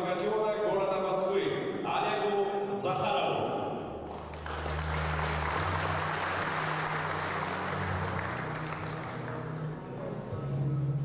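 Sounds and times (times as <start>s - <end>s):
audience applauding: 4.0s - 10.1s
background music bass notes: 4.1s - 11.0s.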